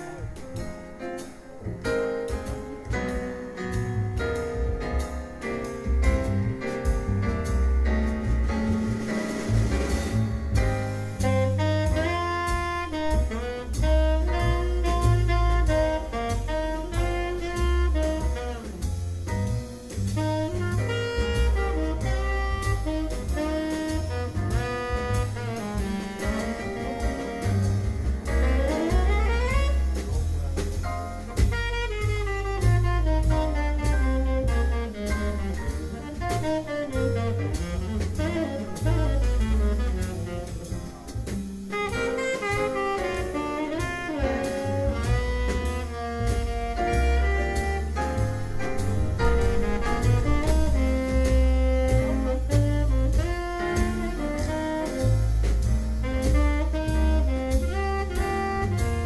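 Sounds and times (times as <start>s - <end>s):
double bass: 0.0s - 59.0s
drum kit with cymbals: 0.0s - 59.0s
piano: 0.0s - 59.0s
tenor saxophone soloing: 11.1s - 59.0s.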